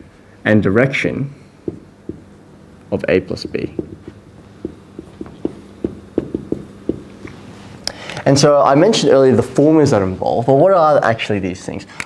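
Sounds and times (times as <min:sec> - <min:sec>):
marker tapping on whiteboard: 0:01.6 - 0:02.4, 0:03.6 - 0:07.3.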